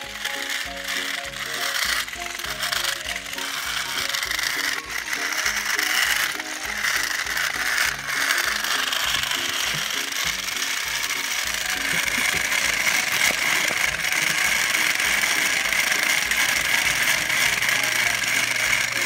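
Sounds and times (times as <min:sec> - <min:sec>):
toy train motors whirring: 0:00.0 - 0:19.0.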